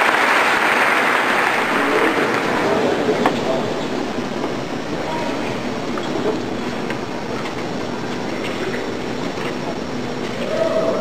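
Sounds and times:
scattered claps: 0.0 - 2.6
crowd talking and cheering: 0.0 - 11.0.

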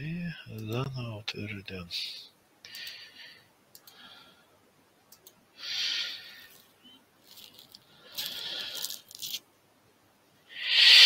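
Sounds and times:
person speaking: 0.0 - 2.4
breathy hissing vocal noises: 5.6 - 6.6, 10.5 - 11.0.

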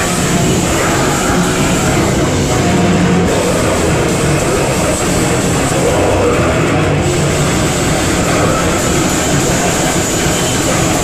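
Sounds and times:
bass guitar: 0.0 - 11.0
distorted electric guitar: 0.0 - 11.0
drums: 0.0 - 11.0.

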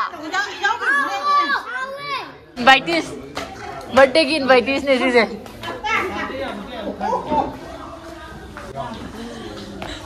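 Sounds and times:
young children talking: 0.0 - 2.5, 5.1 - 8.4.

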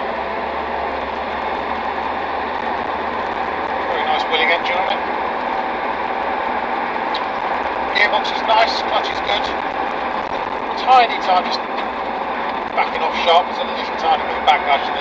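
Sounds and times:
diesel engine droning: 0.0 - 15.0
road noise inside vehicle: 0.0 - 15.0.

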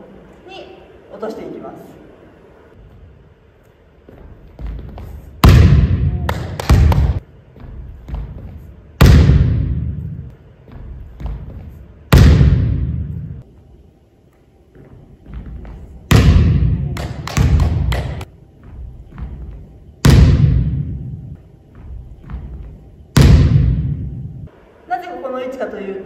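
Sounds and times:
volleyball thudding on wooden floor: 16.1 - 18.2.

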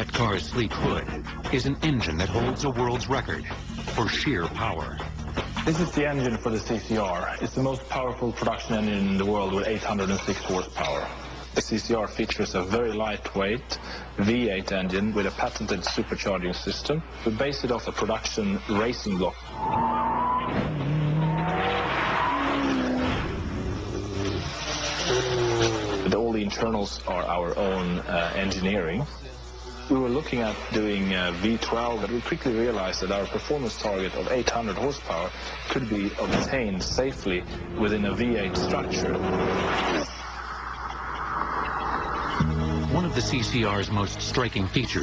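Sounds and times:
car engine and tyre rushing: 19.6 - 26.0, 38.4 - 42.4
car engine revving: 37.4 - 40.2.

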